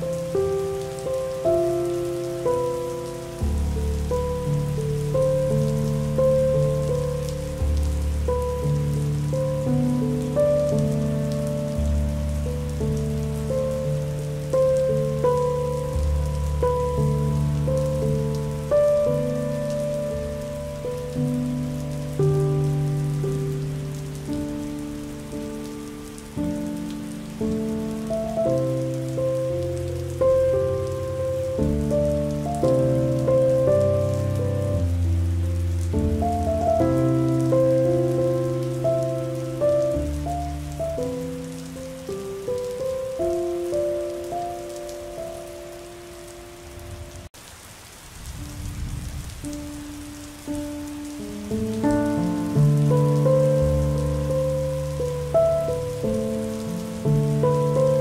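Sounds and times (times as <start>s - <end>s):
slow calm instrumental music: 0.0s - 47.3s, 48.3s - 58.0s
rain pattering: 0.0s - 58.0s.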